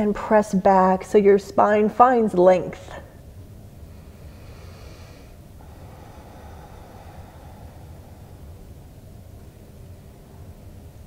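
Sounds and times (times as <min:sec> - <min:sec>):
low steady hum: 0:00.0 - 0:11.0
person breathing through nose: 0:03.9 - 0:09.0.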